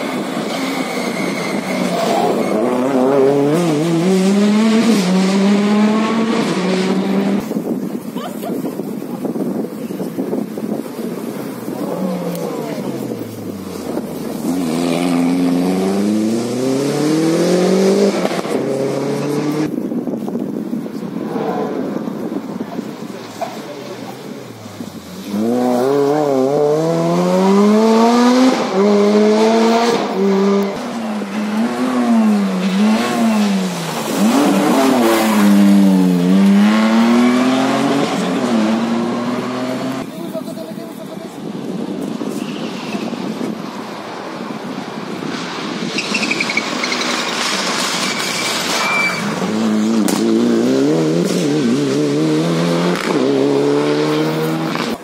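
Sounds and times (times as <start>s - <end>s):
rally car engine accelerating: 0.4s - 7.5s, 11.7s - 19.7s, 24.8s - 40.1s, 49.2s - 55.0s
rally car approaching: 21.0s - 40.1s, 45.5s - 55.0s.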